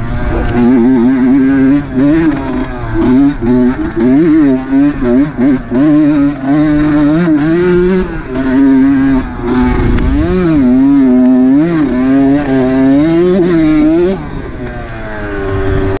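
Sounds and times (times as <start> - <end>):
dirt bike engine revving: 0.0 - 16.0.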